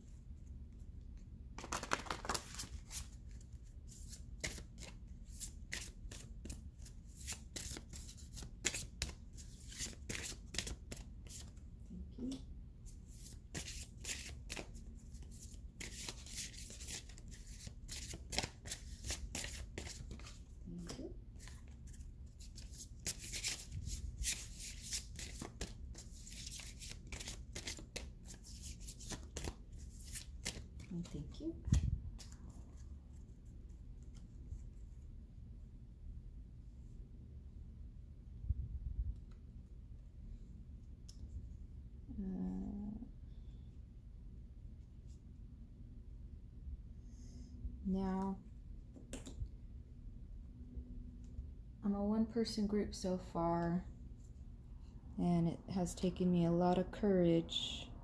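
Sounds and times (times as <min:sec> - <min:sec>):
cards being shuffled: 0:01.6 - 0:11.6, 0:13.1 - 0:32.8.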